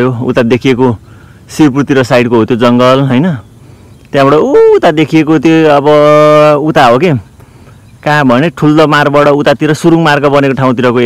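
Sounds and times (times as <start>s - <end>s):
person speaking: 0.0s - 7.4s, 8.0s - 11.0s.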